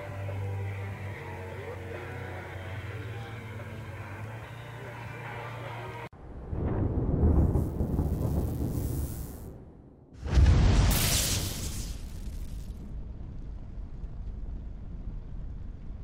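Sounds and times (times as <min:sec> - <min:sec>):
music: 0:00.0 - 0:06.1
deep cinematic rumble: 0:06.0 - 0:10.9, 0:12.0 - 0:16.0.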